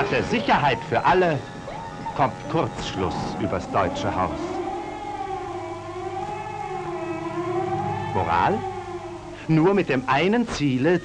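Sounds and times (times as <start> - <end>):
siren wailing: 0.0 - 11.0.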